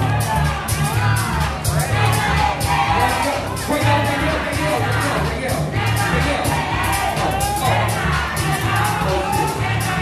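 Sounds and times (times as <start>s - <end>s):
crowd cheering and shouting: 0.0s - 10.0s
dance music with heavy bass beat: 0.0s - 10.0s.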